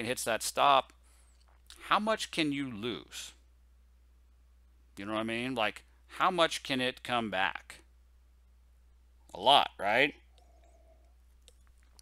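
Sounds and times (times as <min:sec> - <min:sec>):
person speaking: 0:00.0 - 0:03.4, 0:04.9 - 0:07.9, 0:09.2 - 0:10.3.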